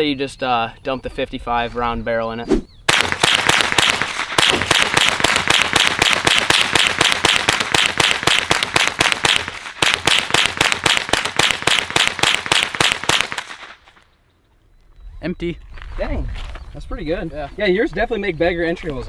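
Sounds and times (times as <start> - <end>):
rifle firing rapidly: 2.9 - 13.8.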